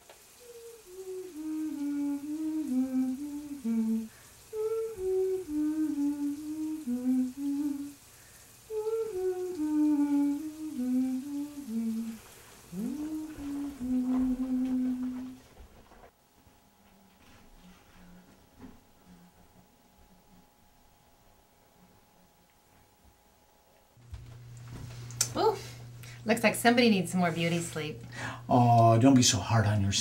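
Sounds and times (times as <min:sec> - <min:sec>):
person humming a gentle tune: 0:00.2 - 0:15.5, 0:16.9 - 0:20.6.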